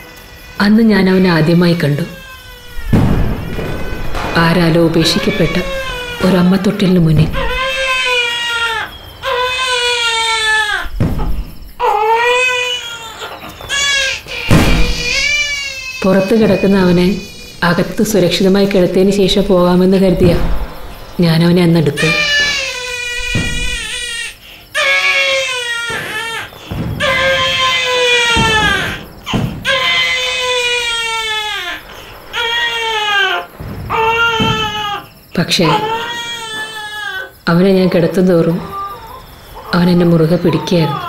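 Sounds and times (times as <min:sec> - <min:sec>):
baby crying: 0:01.8 - 0:11.0, 0:11.8 - 0:17.4, 0:22.0 - 0:37.4, 0:38.6 - 0:39.8, 0:40.4 - 0:41.0.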